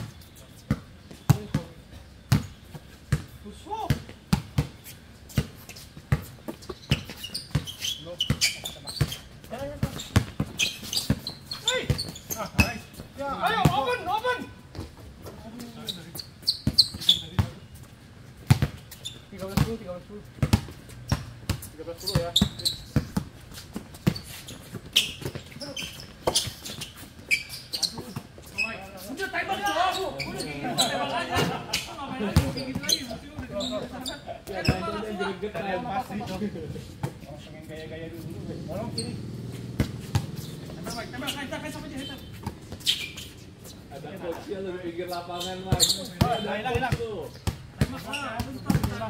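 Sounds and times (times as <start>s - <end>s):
shoes squeaking on court: 0.0s - 49.0s
basketball bouncing on hard court: 6.9s - 12.8s, 18.5s - 18.8s, 19.4s - 19.8s, 39.6s - 41.0s, 45.7s - 49.0s.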